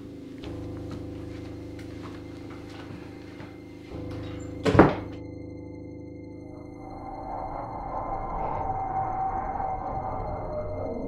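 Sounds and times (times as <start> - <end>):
low drone: 0.0 - 11.0
thin high sustained tones: 0.0 - 11.0.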